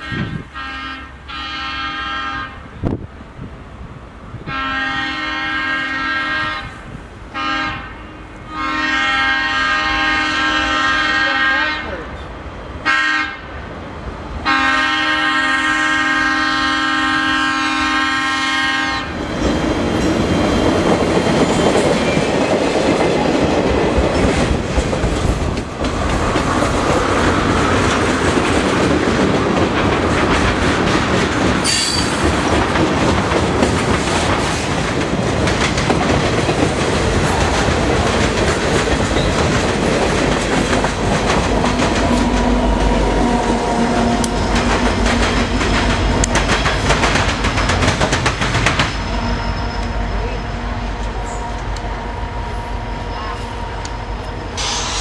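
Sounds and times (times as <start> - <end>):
train air horn: 0.0 - 2.8, 4.4 - 12.1, 12.8 - 13.5, 14.4 - 19.2, 49.1 - 55.0
low locomotive tone: 0.0 - 55.0
train wheels clacking over rails: 18.3 - 50.0.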